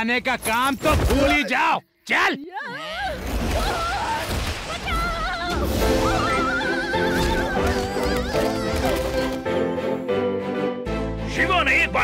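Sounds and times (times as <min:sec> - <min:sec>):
cartoon background music: 0:05.2 - 0:12.0.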